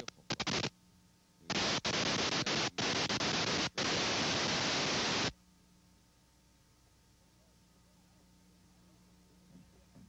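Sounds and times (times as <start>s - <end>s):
videotape static hiss: 0.0s - 5.4s
faint hum: 0.0s - 10.0s.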